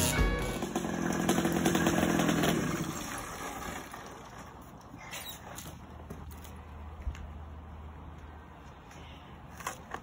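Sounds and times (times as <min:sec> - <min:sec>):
background music: 0:00.0 - 0:00.6
distant dirt bike engine: 0:00.0 - 0:03.9.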